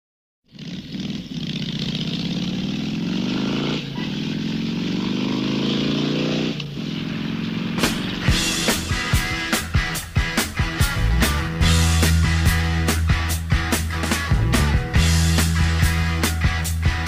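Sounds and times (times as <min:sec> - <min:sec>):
motorcycle engine accelerating: 0:00.5 - 0:17.0
music: 0:07.7 - 0:17.0.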